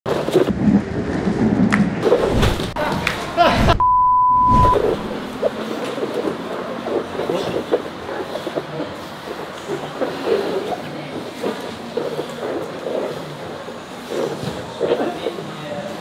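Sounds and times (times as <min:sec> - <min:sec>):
bodies thumping on gym mats: 0:02.2 - 0:03.8
censor bleep: 0:03.8 - 0:05.1.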